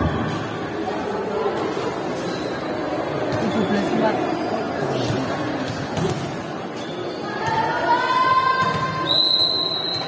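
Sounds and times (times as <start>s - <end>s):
crowd hubbub: 0.0s - 10.0s
referee's whistle blast: 9.0s - 10.0s.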